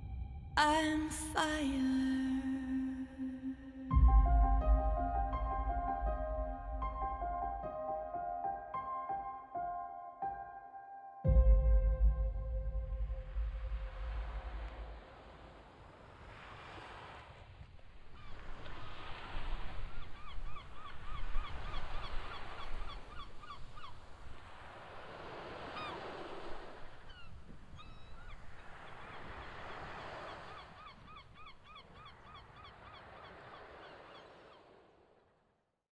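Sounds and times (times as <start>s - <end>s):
surf washing in: 12.5s - 30.9s.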